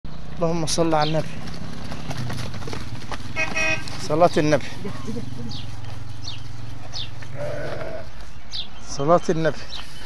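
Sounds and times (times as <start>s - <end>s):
sheep bleating: 7.2s - 8.2s.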